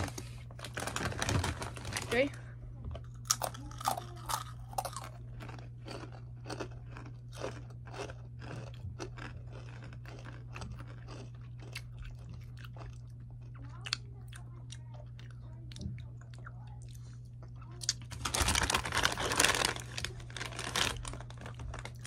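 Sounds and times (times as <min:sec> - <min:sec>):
people crunching chips: 0:00.0 - 0:02.4, 0:03.0 - 0:22.0.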